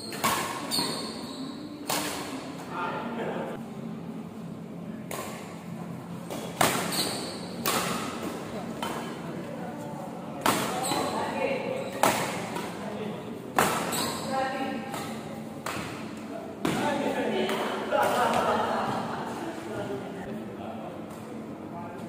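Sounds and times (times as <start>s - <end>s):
badminton rackets striking shuttlecock: 0.0s - 1.1s, 1.8s - 2.4s, 5.1s - 5.6s, 6.3s - 9.2s, 10.4s - 11.2s, 11.9s - 12.8s, 13.6s - 16.8s.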